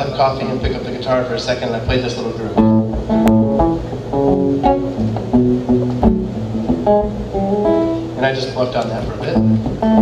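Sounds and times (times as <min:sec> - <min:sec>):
acoustic guitar riff: 0:02.5 - 0:08.3, 0:09.0 - 0:10.0
bass line: 0:02.6 - 0:08.2, 0:09.4 - 0:10.0.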